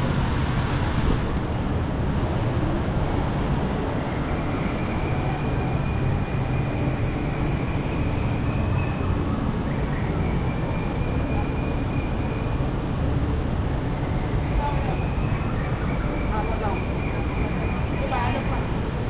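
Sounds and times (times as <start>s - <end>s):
road traffic rumble: 0.0s - 19.0s.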